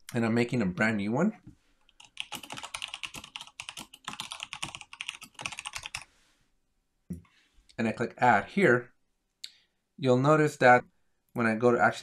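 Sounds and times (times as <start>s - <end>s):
typing on computer keyboard: 1.9s - 6.0s.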